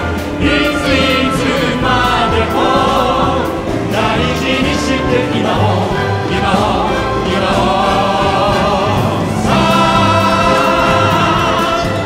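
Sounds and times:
orchestra playing: 0:00.0 - 0:12.0
singers in harmony: 0:00.0 - 0:12.0.

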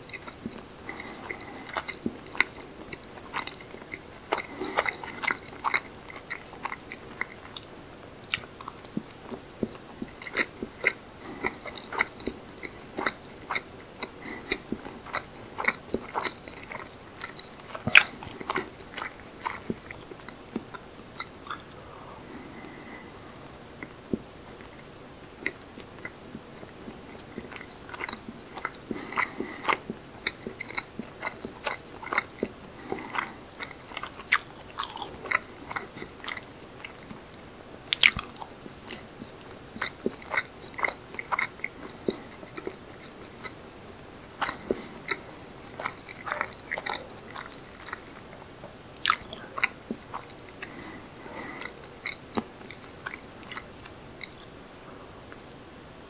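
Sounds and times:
chewing with wet mouth smacks: 0:00.0 - 0:07.7, 0:08.3 - 0:48.4, 0:49.0 - 0:54.5, 0:55.3 - 0:55.6.

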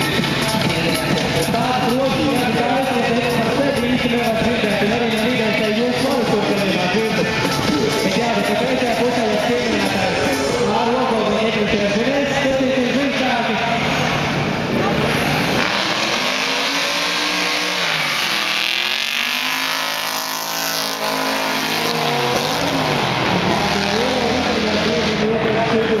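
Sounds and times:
race car engines accelerating: 0:00.0 - 0:26.0.

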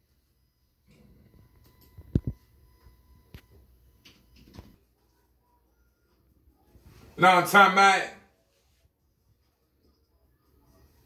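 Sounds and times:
faint steady high tone: 0:00.4 - 0:07.1.

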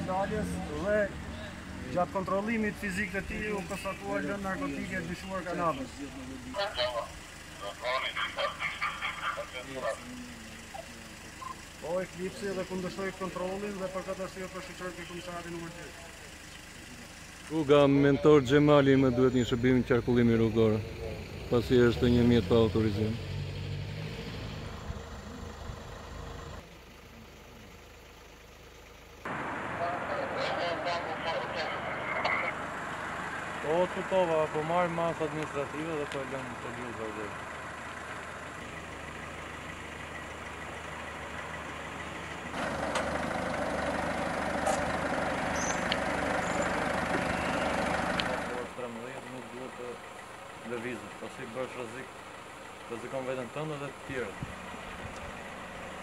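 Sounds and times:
vehicle engine idling: 0:00.0 - 0:23.8, 0:24.5 - 0:56.0
street noise: 0:00.0 - 0:56.0.

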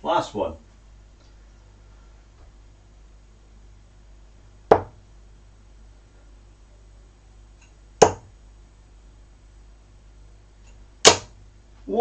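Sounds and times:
darts striking dartboard: 0:04.7 - 0:05.0, 0:08.0 - 0:08.3, 0:11.0 - 0:11.4.

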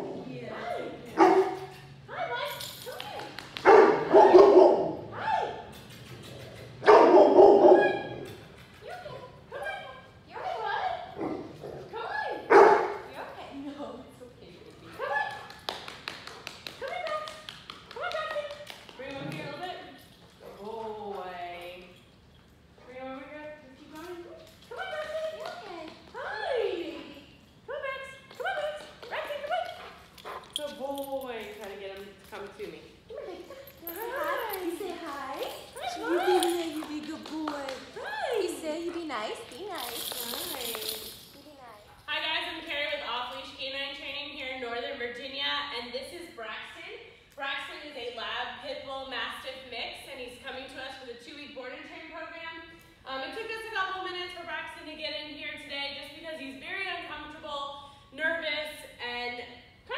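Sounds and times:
large dog barking: 0:03.6 - 0:05.1, 0:06.8 - 0:08.2.

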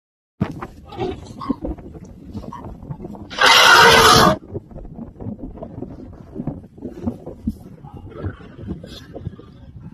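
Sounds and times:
elephant trumpeting: 0:03.3 - 0:04.4.

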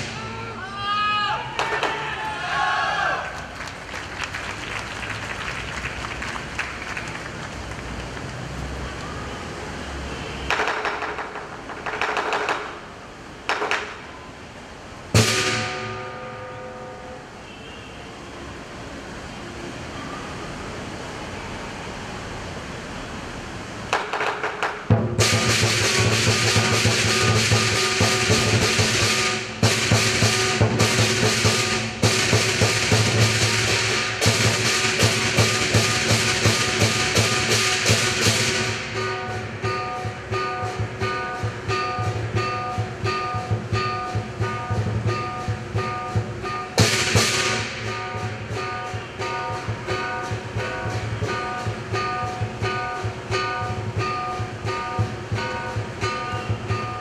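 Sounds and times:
drumming: 0:00.0 - 0:00.6, 0:01.5 - 0:02.2, 0:10.5 - 0:14.2, 0:15.0 - 0:16.7, 0:23.8 - 0:57.0
cymbals crashing: 0:00.0 - 0:01.9, 0:12.7 - 0:17.9, 0:23.9 - 0:57.0
gong strikes: 0:25.0 - 0:57.0.

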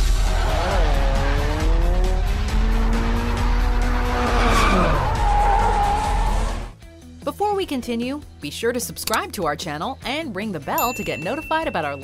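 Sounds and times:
car engine revving: 0:00.0 - 0:06.7.

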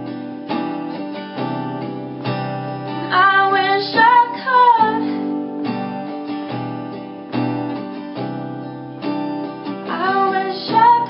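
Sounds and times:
acoustic guitar strumming: 0:00.0 - 0:11.0
woman singing: 0:02.9 - 0:05.6, 0:09.8 - 0:11.0.

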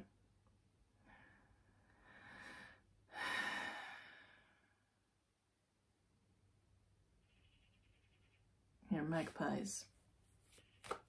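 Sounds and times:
woman breathing in: 0:01.0 - 0:04.8.

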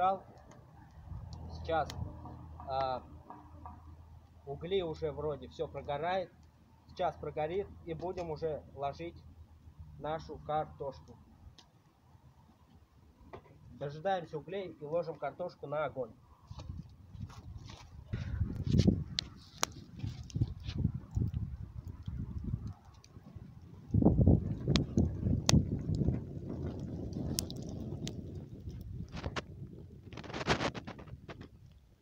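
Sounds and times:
wood fire crackling and popping: 0:00.0 - 0:09.2, 0:16.5 - 0:32.0
low rumbling microphone noise: 0:16.5 - 0:31.9.

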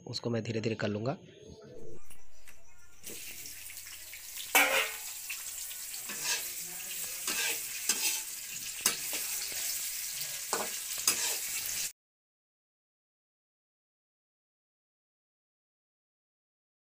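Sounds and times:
vegetables sizzling in a pan: 0:02.9 - 0:11.9
spatula scraping and knocking pan: 0:03.0 - 0:09.8, 0:10.5 - 0:11.9.

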